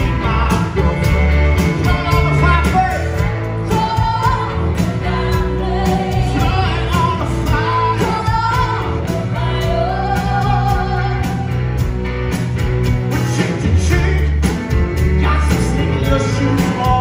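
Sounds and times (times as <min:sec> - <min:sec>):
person singing: 0:00.0 - 0:11.6, 0:15.1 - 0:17.0
live rock band: 0:00.0 - 0:17.0.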